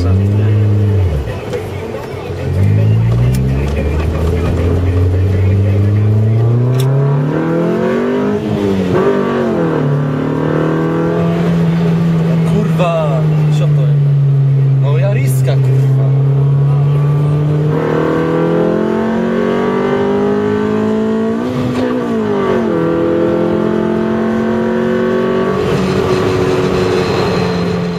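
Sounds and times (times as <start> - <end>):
car engine accelerating: 0.0 - 27.9.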